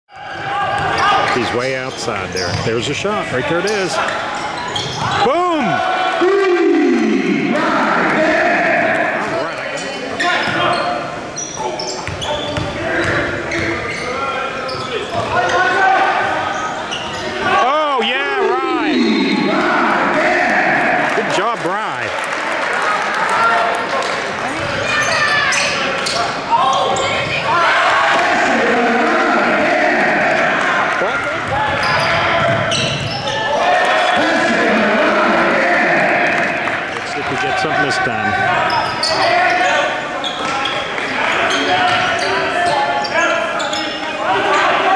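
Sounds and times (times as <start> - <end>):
sneakers squeaking: 0.4 - 2.8, 3.6 - 5.6, 9.6 - 17.5, 24.5 - 27.5, 31.2 - 34.4, 38.3 - 44.8
indistinct voices: 5.0 - 10.5, 17.3 - 22.1, 24.4 - 44.9.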